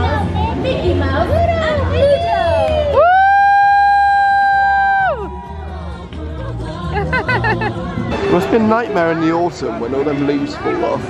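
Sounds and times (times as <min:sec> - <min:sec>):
faint crowd noise: 0:00.0 - 0:11.0.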